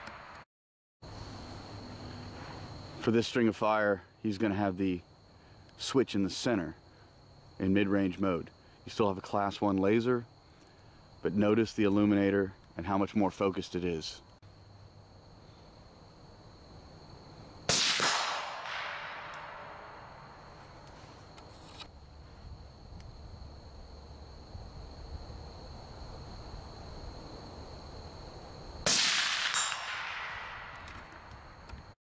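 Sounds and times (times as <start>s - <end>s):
rifle shots echoing: 17.7s - 20.0s, 28.8s - 31.0s.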